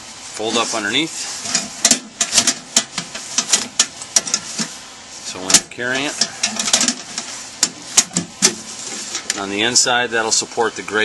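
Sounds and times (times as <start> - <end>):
metal stove legs clicking and clanking: 1.4 - 4.7, 5.5 - 9.4.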